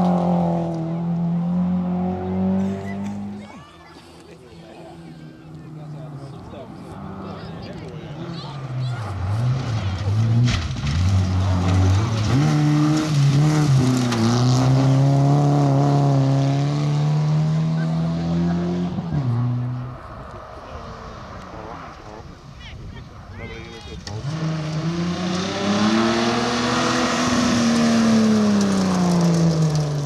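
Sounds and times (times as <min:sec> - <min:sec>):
rally car engine at hard throttle: 0:00.0 - 0:22.4, 0:24.0 - 0:30.0.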